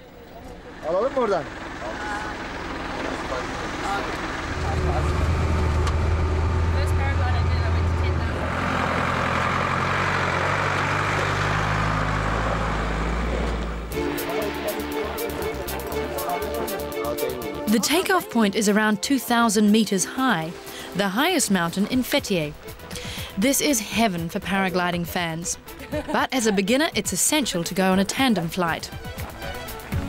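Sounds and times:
voices: 0.0 - 5.7, 6.6 - 8.7, 13.4 - 22.6, 23.2 - 30.0
wind and road noise: 0.0 - 13.9
truck engine droning: 0.0 - 30.0.

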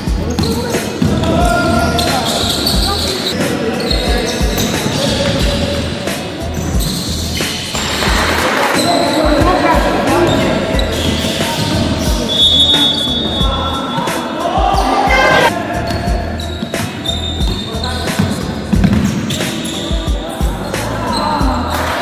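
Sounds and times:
sneakers squeaking: 0.0 - 21.9
players calling out: 0.1 - 7.7, 8.5 - 18.7
basketball bouncing: 17.4 - 19.3.

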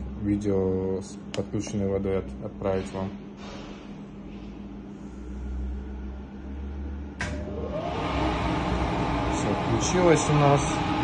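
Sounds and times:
low steady hum: 0.0 - 11.0
fan motor whining: 4.7 - 11.0
oven switch click: 7.2 - 7.5.

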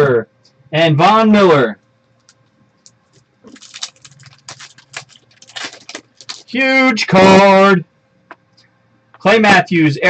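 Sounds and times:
cards rustling: 3.0 - 6.6
foil pack crinkling and ripping: 3.4 - 6.6.

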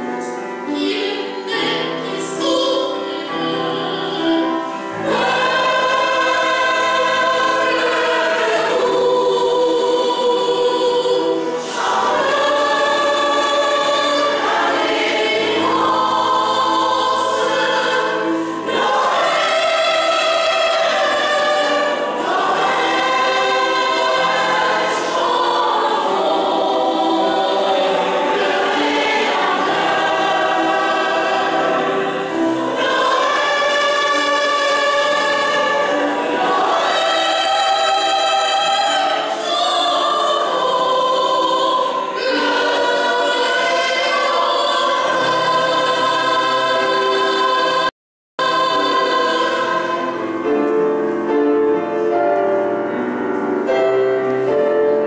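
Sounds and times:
mixed choir singing a carol: 0.0 - 55.0.

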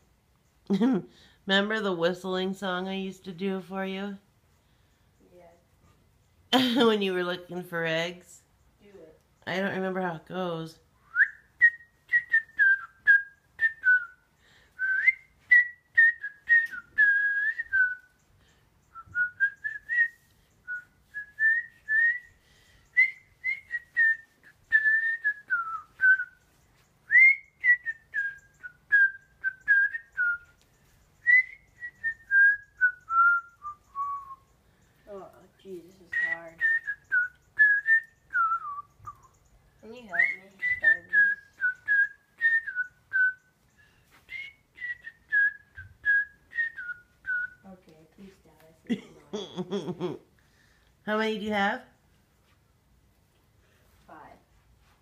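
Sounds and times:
person whistling a tune: 11.1 - 18.2, 18.9 - 22.4, 23.0 - 26.4, 27.1 - 30.5, 31.2 - 34.5, 36.1 - 39.3, 40.1 - 43.5, 44.1 - 47.6.

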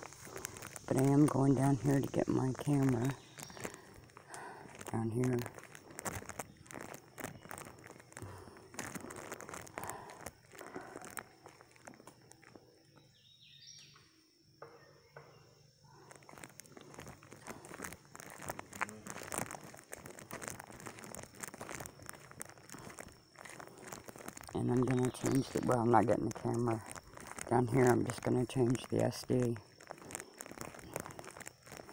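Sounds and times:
footsteps on dry leaves: 0.0 - 12.6, 16.0 - 31.9
leaves and brush crackling: 0.0 - 13.8, 15.8 - 31.9.

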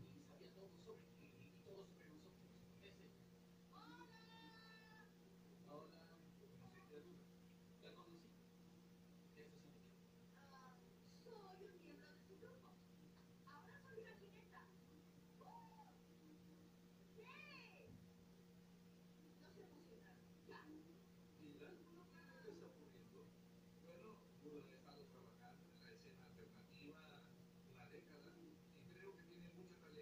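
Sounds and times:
low steady hum: 0.0 - 30.0.

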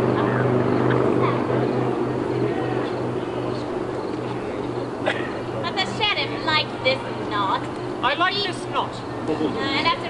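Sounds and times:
faint voices: 0.0 - 10.0
steady low hum: 0.0 - 10.0.

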